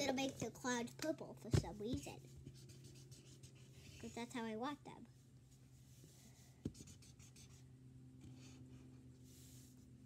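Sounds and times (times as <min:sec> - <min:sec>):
marker scratching on paper: 0:01.9 - 0:04.3, 0:06.6 - 0:07.7.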